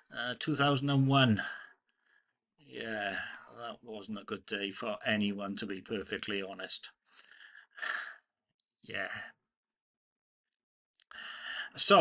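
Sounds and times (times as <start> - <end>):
man speaking: 0.0 - 1.6, 2.6 - 7.0, 8.8 - 9.4, 11.7 - 12.0.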